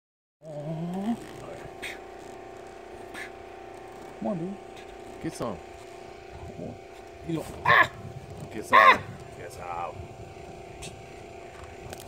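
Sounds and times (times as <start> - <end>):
low mechanical hum: 0.4 - 12.0.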